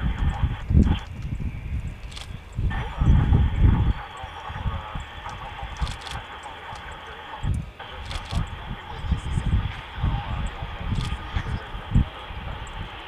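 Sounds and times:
wind buffeting microphone: 0:00.0 - 0:13.0
steady mid-range hiss: 0:02.0 - 0:13.0.

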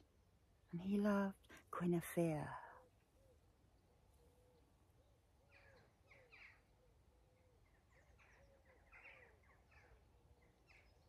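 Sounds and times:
faint bird chirps: 0:02.6 - 0:11.0.

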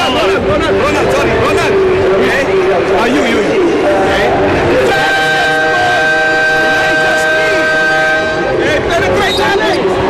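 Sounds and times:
arena crowd murmur: 0:00.0 - 0:10.0
steady electronic tone: 0:00.0 - 0:10.0.

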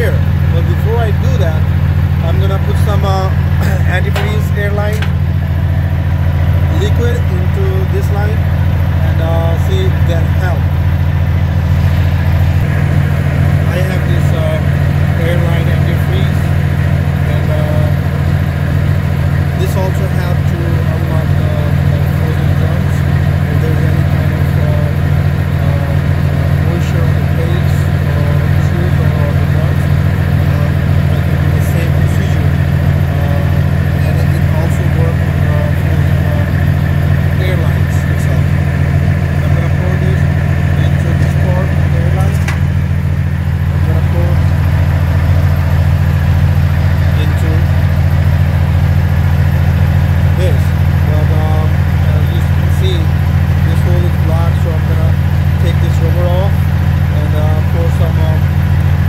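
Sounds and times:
diesel truck engine idling: 0:00.0 - 0:59.0.

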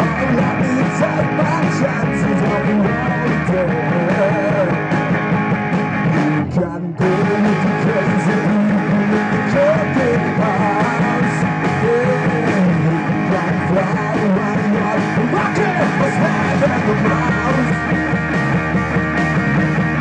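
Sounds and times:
distorted electric guitars: 0:00.0 - 0:20.0
drum kit: 0:00.0 - 0:20.0.

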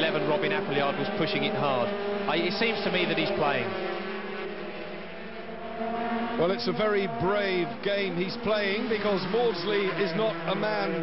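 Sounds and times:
racing motorcycles at high revs: 0:00.0 - 0:11.0.

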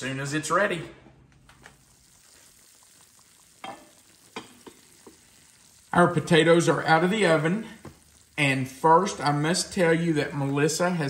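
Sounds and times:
casserole sizzling and crackling: 0:00.0 - 0:11.0.

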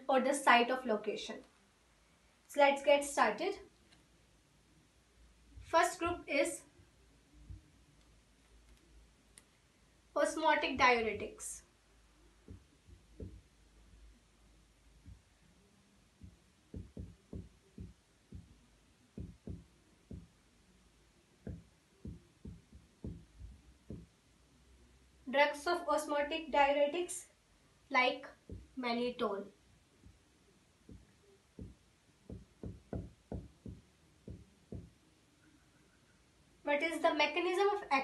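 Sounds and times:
marker writing on whiteboard: 0:10.2 - 0:11.5, 0:12.4 - 0:13.5, 0:15.0 - 0:15.4, 0:16.2 - 0:20.4, 0:21.4 - 0:24.1, 0:28.4 - 0:28.8, 0:30.9 - 0:35.0.

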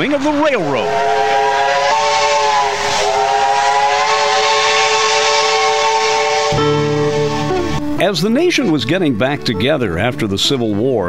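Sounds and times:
steam locomotive whistle: 0:00.0 - 0:08.8
hiss of steam: 0:00.2 - 0:07.5.

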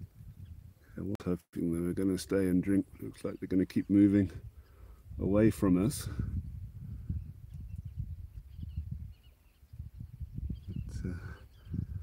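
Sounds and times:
wind buffeting microphone: 0:00.0 - 0:01.1, 0:01.8 - 0:12.0
faint bird chirps: 0:06.8 - 0:12.0.

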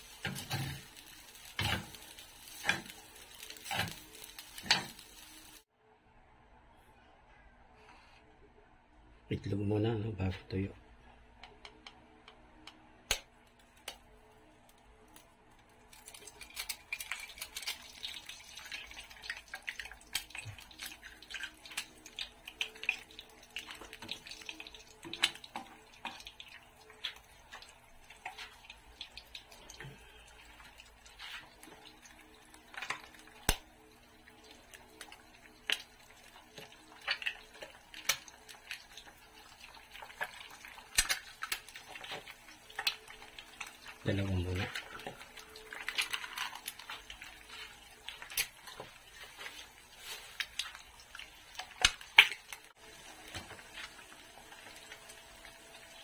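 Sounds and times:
egg sizzling in hot oil: 0:00.0 - 0:05.7, 0:15.9 - 0:56.0
egg cracking: 0:11.4 - 0:55.6
oil popping and spattering: 0:15.9 - 0:29.8, 0:34.8 - 0:54.0.

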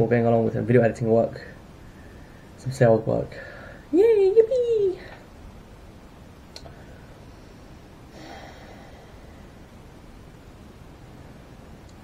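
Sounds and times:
low room hum: 0:00.0 - 0:12.0
man exhaling with a snort: 0:08.1 - 0:09.2.

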